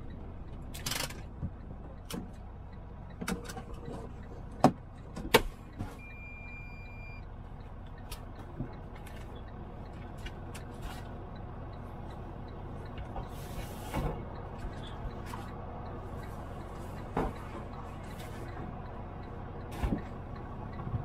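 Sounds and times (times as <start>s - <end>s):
sharp clicks and knocks in cab: 0.0s - 2.5s, 3.1s - 5.8s, 16.9s - 19.0s
truck engine and road rumble: 0.0s - 21.0s
high beep: 6.0s - 7.3s.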